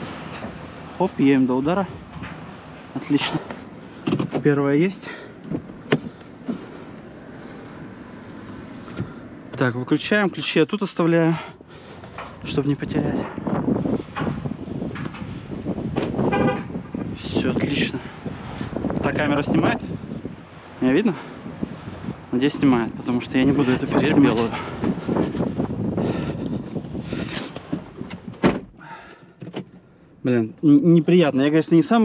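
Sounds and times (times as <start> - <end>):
wind buffeting microphone: 0.0 - 4.5, 11.9 - 28.8
car door shutting: 5.4 - 6.3, 27.3 - 28.8, 29.4 - 29.8.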